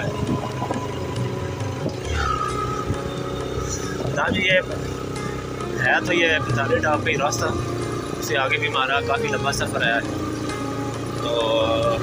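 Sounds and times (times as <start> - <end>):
wind rumble on microphone: 0.0 - 4.6
motorcycle engine running: 0.0 - 12.0.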